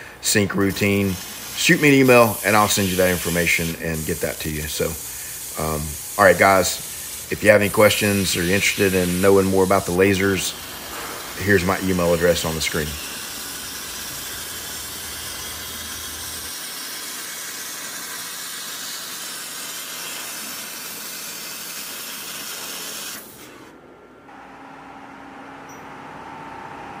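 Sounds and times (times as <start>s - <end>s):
laser gas jet hissing: 0.0s - 23.7s.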